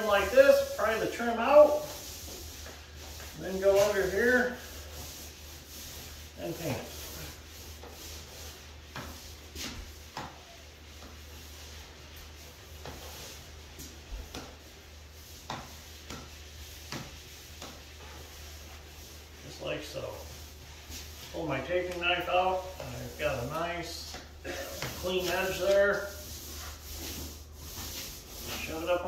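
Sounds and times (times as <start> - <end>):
paint pad rubbing on drywall: 0.0 - 29.0.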